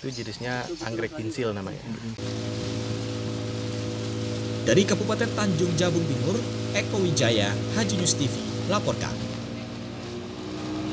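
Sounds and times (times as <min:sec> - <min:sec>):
low tones humming: 0:01.9 - 0:10.9
even hiss: 0:02.0 - 0:09.5.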